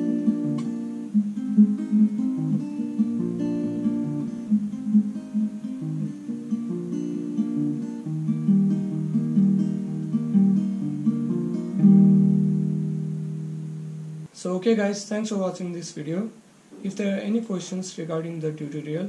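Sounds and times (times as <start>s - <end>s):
fingerpicked acoustic guitar: 0.0s - 14.3s.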